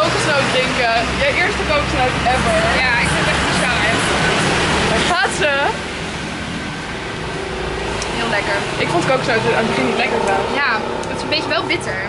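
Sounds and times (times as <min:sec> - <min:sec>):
low rumble: 0:00.5 - 0:12.0.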